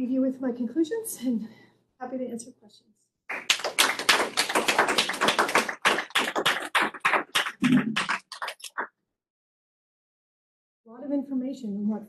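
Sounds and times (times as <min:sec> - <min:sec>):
small group applauding: 0:03.3 - 0:08.9.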